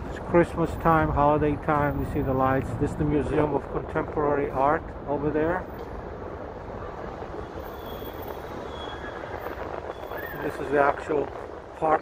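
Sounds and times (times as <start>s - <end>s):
distant traffic: 0.0s - 12.0s.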